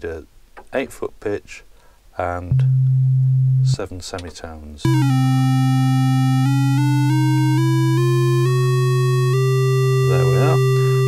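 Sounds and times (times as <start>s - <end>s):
buzzy oscillator climbing in pitch: 2.5s - 3.8s, 4.9s - 11.0s
low synthesiser sine tone: 2.5s - 3.8s, 4.9s - 11.0s.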